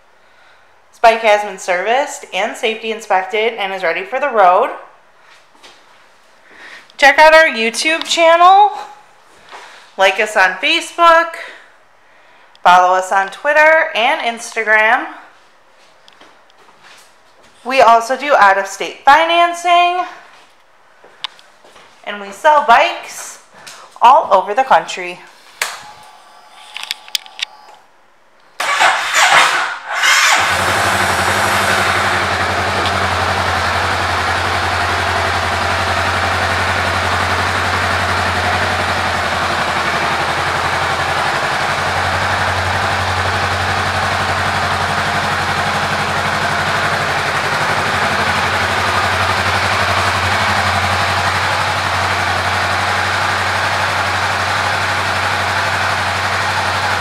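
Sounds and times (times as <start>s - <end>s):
motorcycle engine starting and idling: 28.6s - 57.0s.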